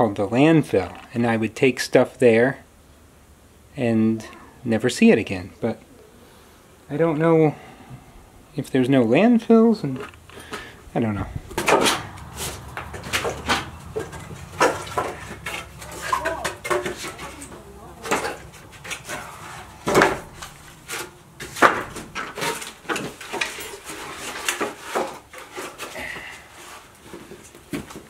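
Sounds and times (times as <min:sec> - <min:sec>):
wooden boards knocking together: 0:11.5 - 0:26.4.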